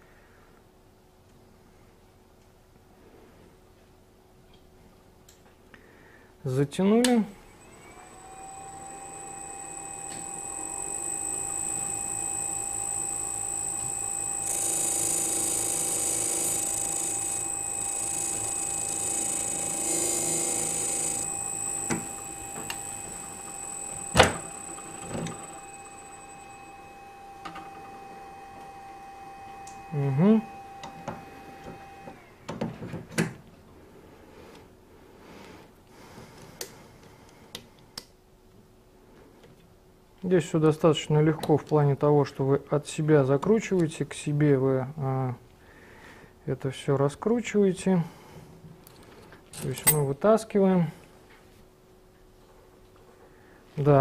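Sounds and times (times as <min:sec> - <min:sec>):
electric motor whine: 0:07.4 - 0:32.3.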